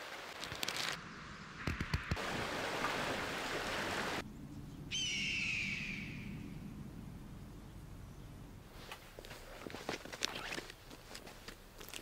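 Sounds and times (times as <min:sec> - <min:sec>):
descending bird cry: 0:04.5 - 0:06.7.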